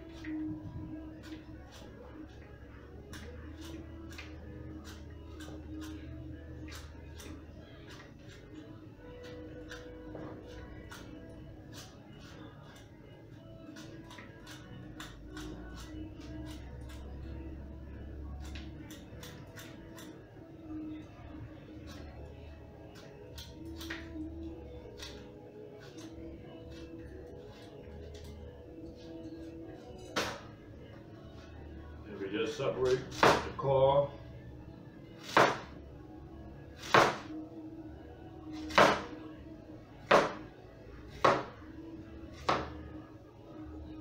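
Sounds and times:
soft background music: 0:00.0 - 0:44.0
paring knife peeling an apple: 0:01.2 - 0:17.4, 0:22.9 - 0:30.4.

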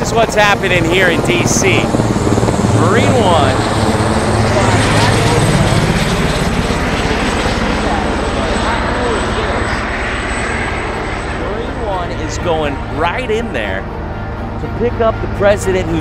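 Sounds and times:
helicopter flying overhead: 0:00.0 - 0:16.0.

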